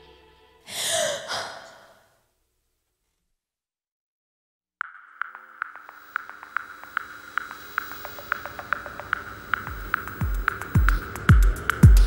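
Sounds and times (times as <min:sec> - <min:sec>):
deep kick drum: 0:09.7 - 0:12.0.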